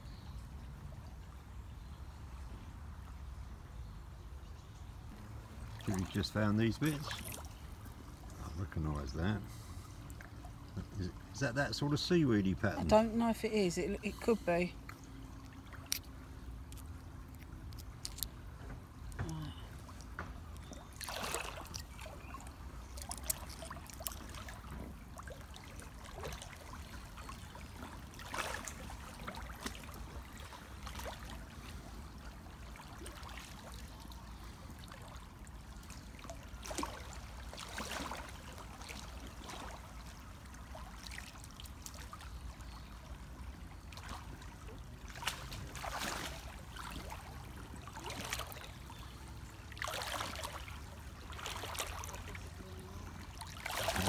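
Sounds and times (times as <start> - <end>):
river water running over gravel: 5.3 - 54.0
water splash: 5.6 - 7.6, 19.2 - 31.7, 36.1 - 42.2, 43.9 - 48.7, 49.7 - 52.4, 53.3 - 54.0.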